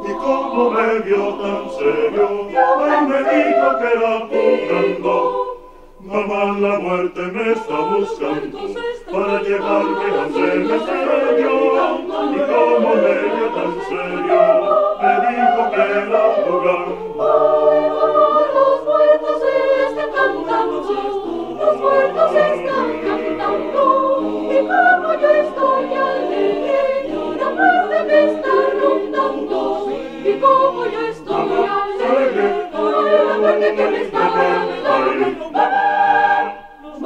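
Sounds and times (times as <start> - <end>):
choir singing a cappella: 0.0 - 37.0.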